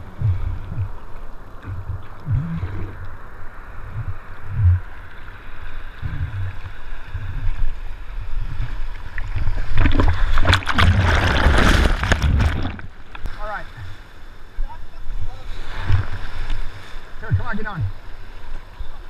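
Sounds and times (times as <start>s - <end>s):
water sloshing: 0.0s - 14.0s
breaking whitewater rushing: 9.8s - 13.6s.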